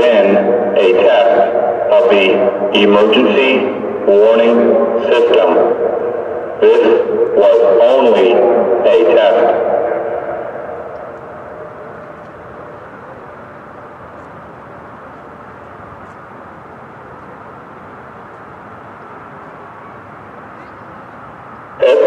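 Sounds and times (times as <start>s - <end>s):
siren voice message: 0.0s - 5.9s, 6.6s - 13.3s, 19.9s - 22.0s
outdoor background noise: 0.0s - 22.0s.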